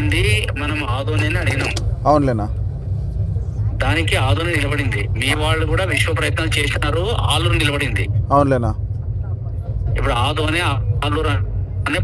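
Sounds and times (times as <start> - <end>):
man speaking on phone: 0.0 - 2.5, 10.0 - 12.0
steady low hum: 0.0 - 12.0.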